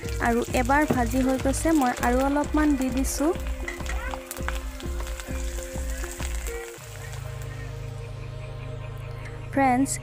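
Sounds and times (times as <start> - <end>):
food sizzling in hot oil: 0.0 - 8.0
background music with steady beat: 0.0 - 10.0.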